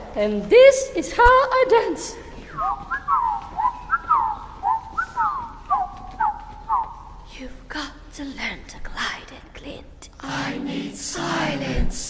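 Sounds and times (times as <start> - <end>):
whistle-like chirping: 2.5 - 7.1.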